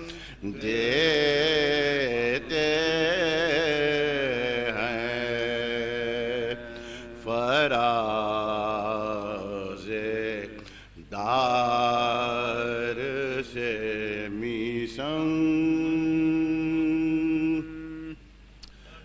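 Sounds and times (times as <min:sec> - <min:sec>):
man chanting: 0:00.0 - 0:18.2.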